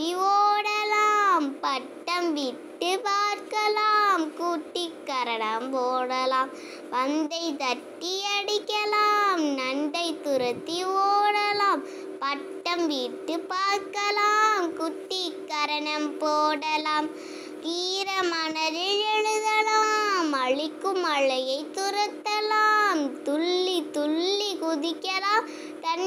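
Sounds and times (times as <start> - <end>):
child singing: 0.0 - 26.0.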